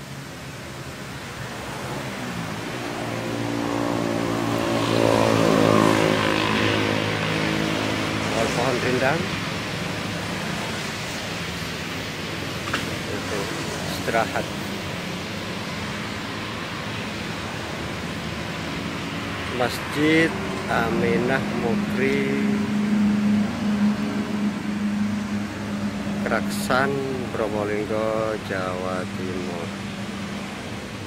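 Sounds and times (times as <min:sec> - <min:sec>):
road traffic rushing: 0:00.0 - 0:31.0
vehicle engine hum: 0:00.0 - 0:31.0.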